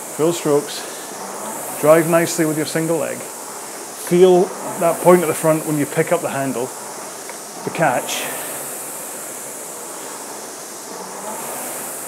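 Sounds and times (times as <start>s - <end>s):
rowing machine flywheel whooshing: 0.0s - 12.0s.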